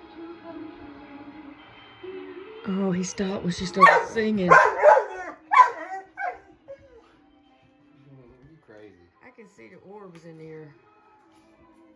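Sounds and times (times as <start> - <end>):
dog whining yelps: 3.8 - 7.0.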